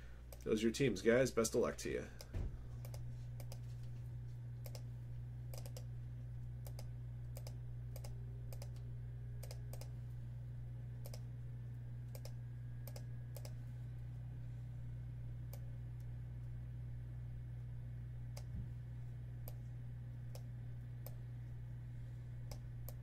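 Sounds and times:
low electrical hum: 0.0s - 23.0s
keyboard and mouse clicks: 2.2s - 3.6s, 4.6s - 4.9s, 5.5s - 5.9s, 6.6s - 8.8s, 9.4s - 9.9s, 11.0s - 11.2s, 12.1s - 13.6s.

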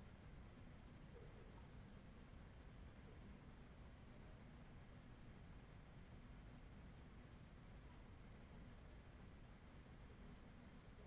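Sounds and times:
low room hum: 0.0s - 11.0s
computer mouse clicks: 10.8s - 11.0s.

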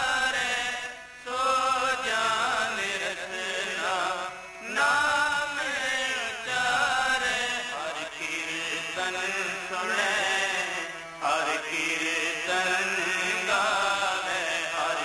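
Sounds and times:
harmonium: 0.0s - 15.0s
man singing a hymn: 0.0s - 15.0s
tabla: 0.0s - 15.0s.

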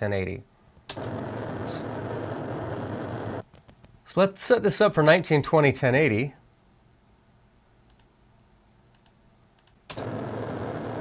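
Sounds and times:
noisy rumble with low hum: 0.7s - 4.0s, 9.9s - 11.0s.

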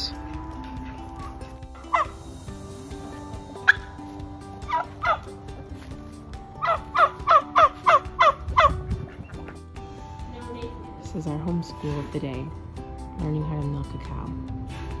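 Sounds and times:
turkey calling: 1.8s - 2.2s, 4.6s - 5.4s, 6.6s - 9.6s.

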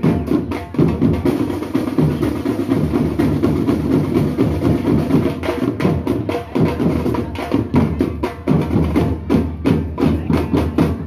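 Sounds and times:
marching drum line playing: 0.0s - 11.0s.

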